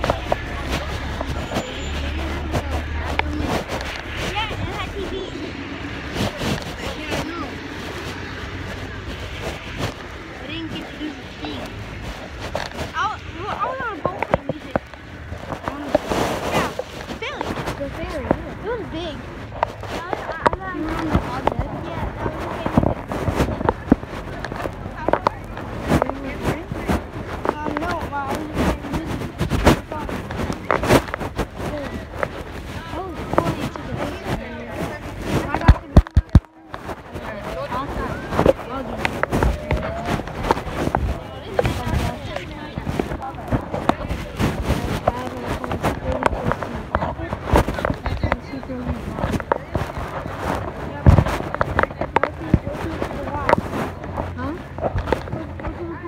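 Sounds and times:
indistinct voices talking: 0.0s - 56.0s.

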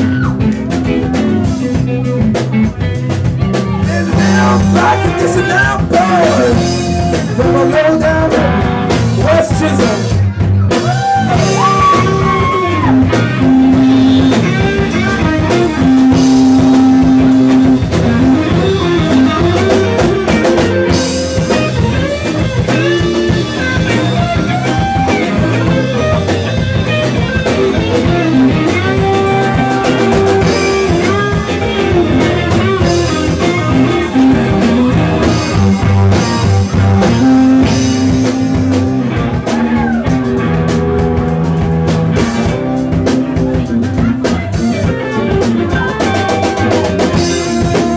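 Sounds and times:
electric guitar lead lines: 0.0s - 47.9s
funk rock band playing: 0.0s - 47.9s.

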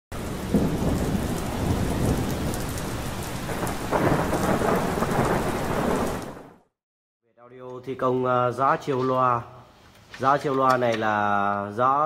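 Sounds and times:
rolling thunder rumbles: 0.1s - 6.7s
heavy rain hiss: 0.2s - 6.4s.

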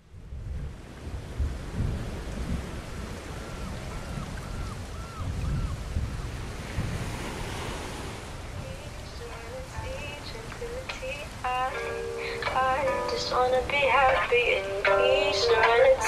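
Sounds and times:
ocean surf washing: 0.0s - 16.0s
melody: 9.3s - 16.0s.

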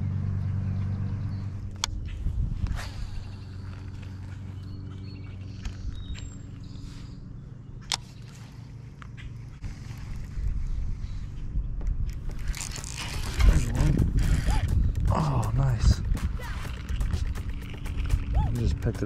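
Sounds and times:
low steady rumble: 0.0s - 19.0s.

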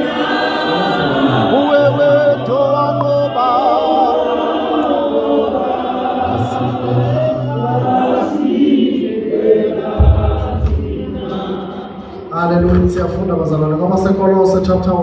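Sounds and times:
choir singing in harmony: 0.0s - 13.6s
low thud: 10.0s - 11.1s.

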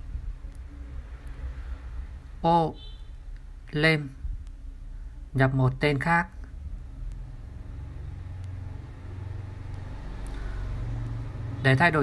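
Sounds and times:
low rumble: 6.4s - 11.6s.

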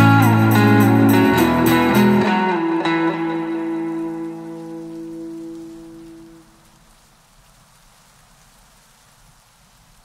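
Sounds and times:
background music chord: 0.0s - 6.4s
faint steady hiss: 0.0s - 10.0s.

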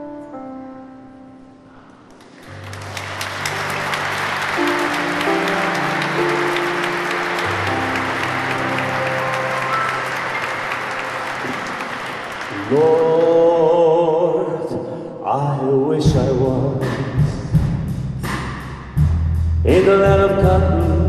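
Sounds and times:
audience applauding: 2.1s - 14.0s.

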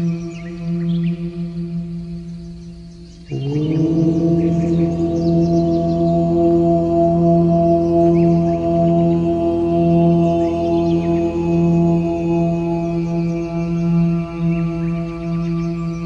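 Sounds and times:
deep om chant over drone: 0.0s - 16.0s.

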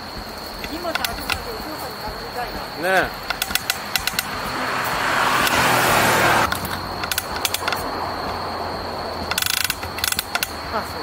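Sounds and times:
bicycle drivetrain clicking: 0.0s - 11.0s
loud rushing noise: 2.8s - 9.4s.

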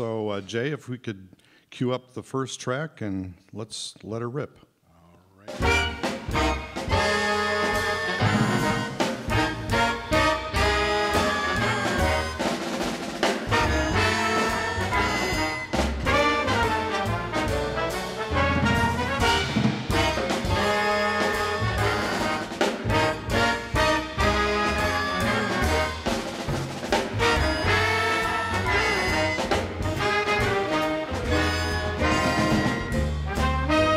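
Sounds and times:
big band jazz over loudspeakers: 5.4s - 33.9s.

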